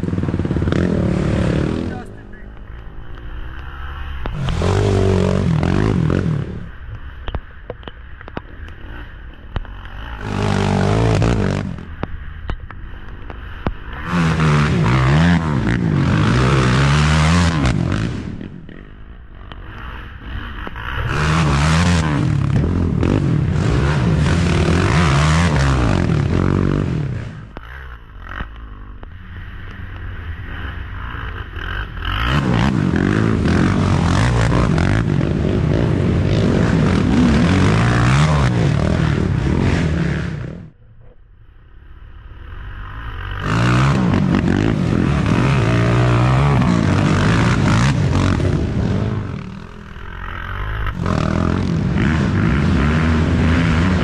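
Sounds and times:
atv engines revving: 0:00.0 - 0:54.0.

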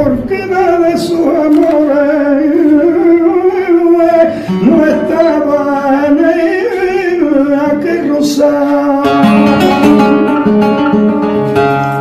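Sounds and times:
man singing wordless melismatic line: 0:00.0 - 0:10.9.

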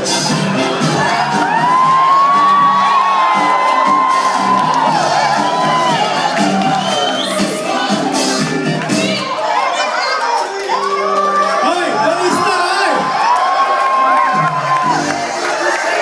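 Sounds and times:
loud music: 0:00.0 - 0:16.0
audience cheering and whooping: 0:00.1 - 0:16.0.

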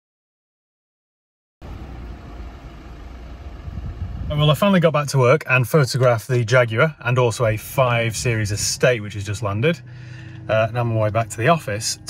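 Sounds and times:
car engine rumbling: 0:01.6 - 0:12.0.

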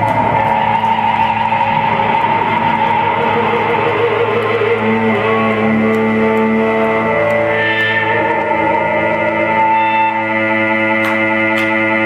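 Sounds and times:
electric guitar sustained notes: 0:00.0 - 0:12.0.

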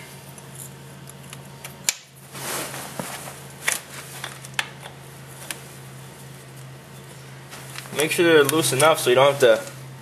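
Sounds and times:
steady low hum: 0:00.0 - 0:10.0
handling rustle: 0:02.3 - 0:04.5.

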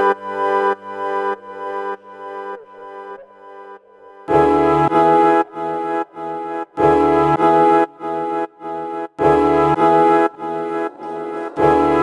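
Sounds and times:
brass ensemble chords: 0:04.3 - 0:12.0.

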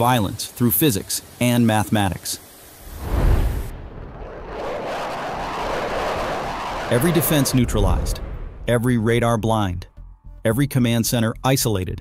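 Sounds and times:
jet fighter flying past: 0:02.8 - 0:08.7.

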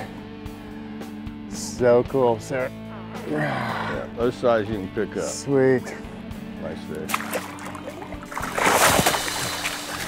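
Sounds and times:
background music: 0:00.0 - 0:10.0
fish thrashing and splashing: 0:07.1 - 0:10.0.

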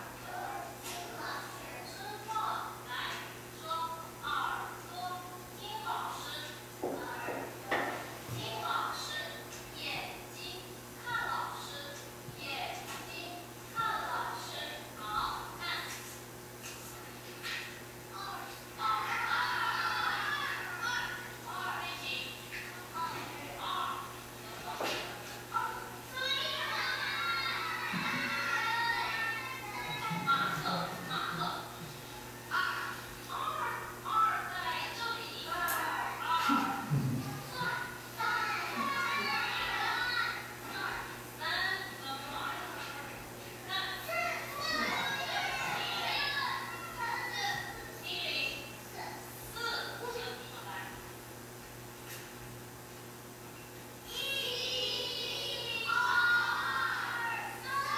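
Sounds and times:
teacher speaking: 0:00.0 - 0:51.1, 0:54.0 - 0:57.9.

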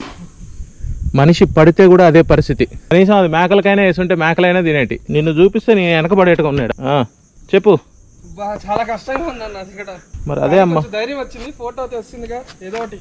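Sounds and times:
insects buzzing: 0:00.0 - 0:13.0.

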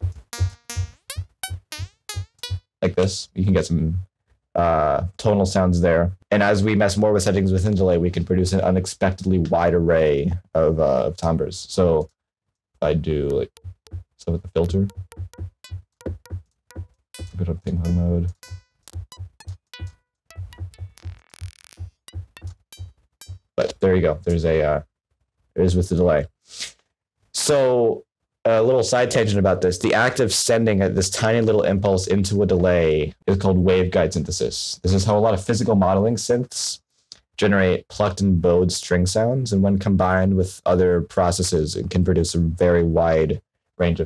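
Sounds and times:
buzzy pitched delay tone: 0:00.4 - 0:02.6, 0:14.6 - 0:23.4
synthesized click echoes: 0:00.4 - 0:02.6, 0:13.3 - 0:14.0, 0:14.6 - 0:23.4.

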